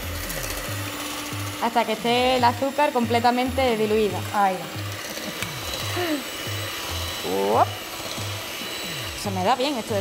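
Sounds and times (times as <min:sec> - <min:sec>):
electric hand mixer running: 0:00.0 - 0:10.0.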